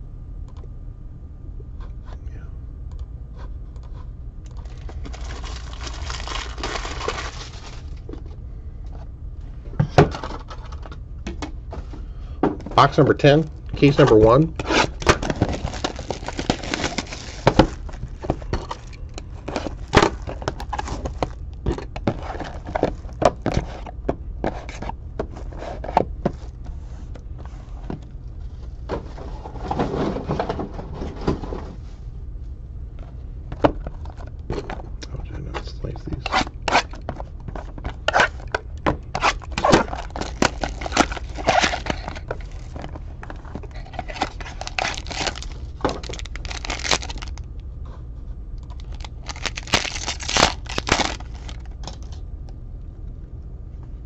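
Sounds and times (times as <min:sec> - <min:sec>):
steady low hum: 0:00.0 - 0:54.0
foil packs crinkling: 0:04.6 - 0:08.2, 0:12.8 - 0:21.4, 0:36.3 - 0:47.4, 0:48.6 - 0:52.0
box tearing open: 0:04.8 - 0:08.0, 0:13.9 - 0:18.2, 0:39.1 - 0:42.5, 0:43.6 - 0:47.4, 0:48.7 - 0:51.7
cardboard boxes tapping and scraping: 0:36.2 - 0:47.4.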